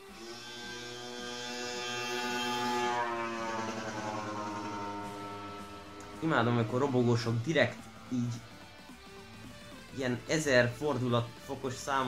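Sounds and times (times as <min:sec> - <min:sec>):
motor scooter passing: 0:00.0 - 0:09.9.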